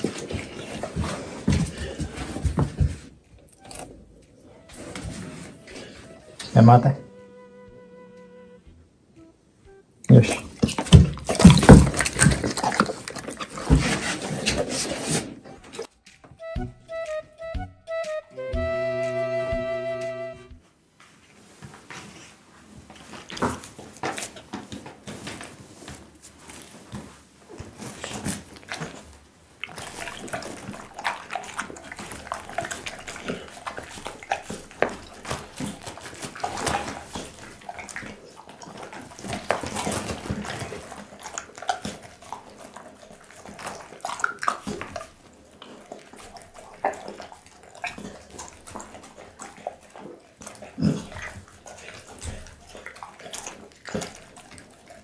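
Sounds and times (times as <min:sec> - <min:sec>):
dog chewing and lapping meat: 0:00.0 - 0:06.9, 0:10.1 - 0:16.2, 0:22.0 - 0:55.0
teeth clicking: 0:29.6 - 0:55.0.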